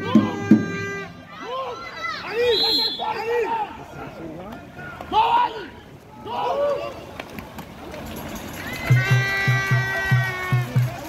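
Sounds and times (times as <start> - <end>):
distant shouting voices: 0.0 - 4.1
swimmers splashing water: 0.0 - 11.0
music: 8.4 - 11.0.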